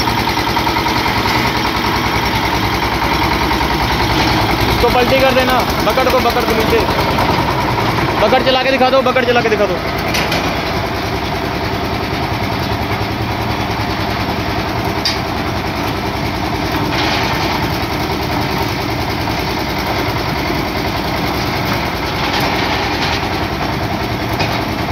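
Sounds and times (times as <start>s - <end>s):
concrete mixer engine running: 0.0s - 24.9s.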